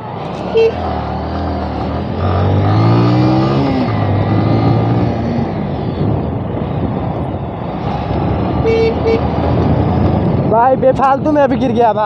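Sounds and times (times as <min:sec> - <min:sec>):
wind and road noise: 0:00.0 - 0:12.0
horn toots: 0:00.4 - 0:01.0, 0:08.6 - 0:09.3.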